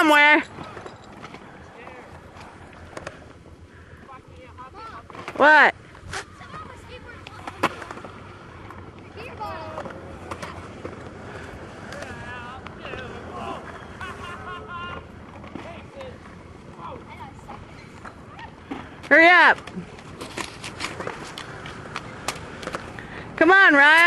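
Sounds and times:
skateboard wheels rolling on concrete: 0.0s - 24.0s.

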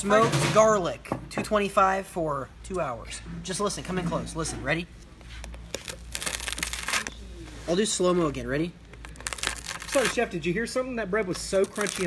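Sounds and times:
knife crunching through crusty bread: 5.5s - 7.1s, 9.0s - 10.2s.

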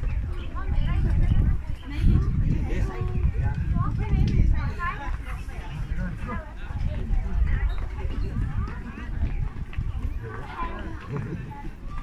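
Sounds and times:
people talking: 0.0s - 12.0s
wind buffeting microphone: 0.0s - 12.0s.

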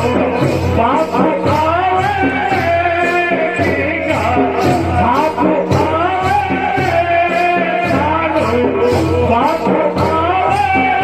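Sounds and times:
folk singing with melody and beat: 0.0s - 11.0s.

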